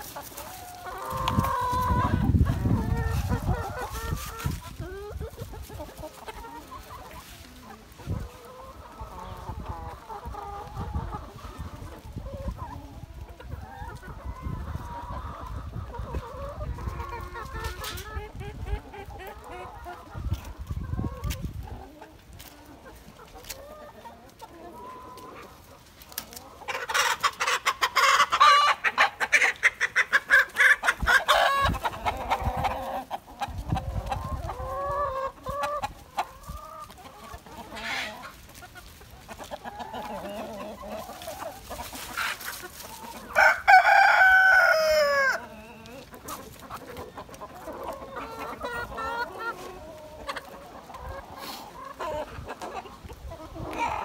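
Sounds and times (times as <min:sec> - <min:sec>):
chickens clucking: 0:00.0 - 0:54.0
rapid chicken cackling: 0:00.0 - 0:54.0
rooster crowing: 0:43.4 - 0:45.4.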